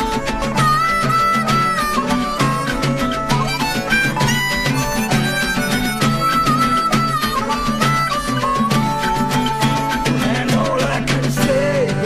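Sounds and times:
rock band playing live: 0.0s - 12.0s.

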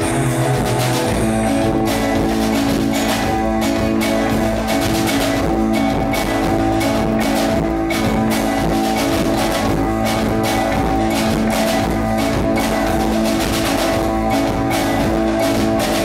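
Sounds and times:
acoustic guitar: 0.0s - 16.0s
steady drum beat: 0.0s - 16.0s.

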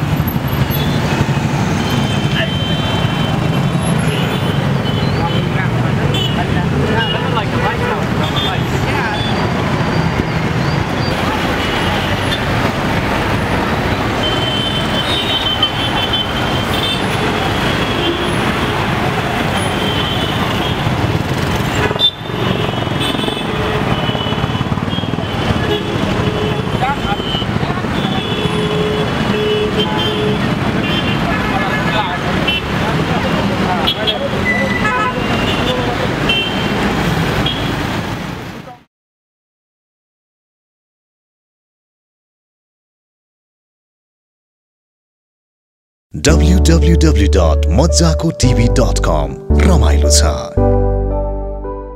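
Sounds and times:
busy street traffic: 0.0s - 38.9s, 46.1s - 50.7s
vehicle horns tooting: 0.4s - 10.1s, 13.9s - 32.8s, 33.8s - 36.8s.

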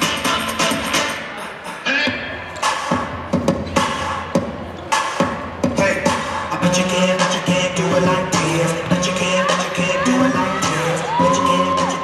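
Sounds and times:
hip-hop music over speakers: 0.0s - 12.0s.

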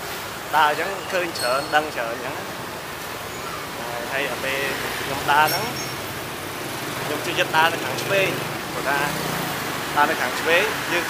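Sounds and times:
motorbike and car engines: 0.0s - 11.0s
man speaking: 3.8s - 5.8s, 7.0s - 9.2s, 10.0s - 11.0s.

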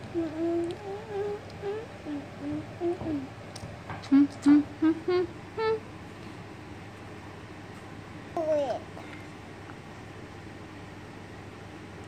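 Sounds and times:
person humming short notes: 0.1s - 3.3s, 4.0s - 5.8s.

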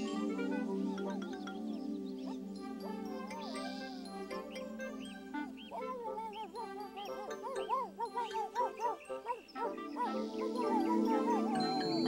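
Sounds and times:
light children's show music: 0.0s - 12.0s.

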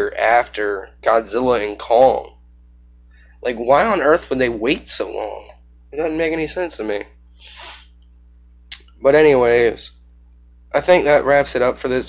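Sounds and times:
low steady hum: 0.0s - 12.0s
soft breath: 3.0s - 3.4s
mouth click: 8.7s - 9.0s.

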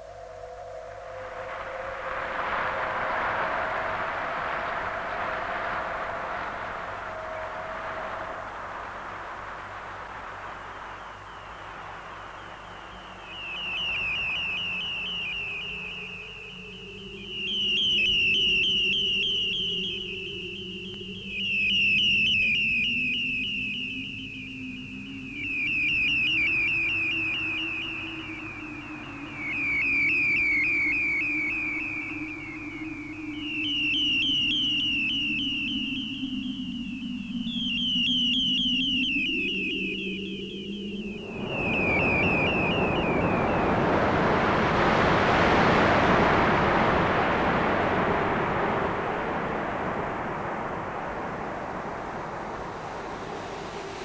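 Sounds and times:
low gliding drone: 0.0s - 54.0s.

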